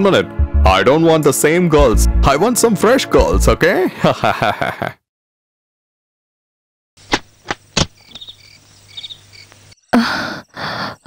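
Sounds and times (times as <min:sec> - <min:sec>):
crickets chirping: 0:07.2 - 0:11.0.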